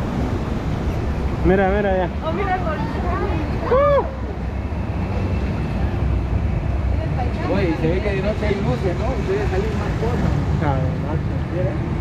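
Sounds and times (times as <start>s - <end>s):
rapids water rushing: 0.0s - 12.0s
wind buffeting microphone: 0.0s - 12.0s
voices: 1.4s - 12.0s.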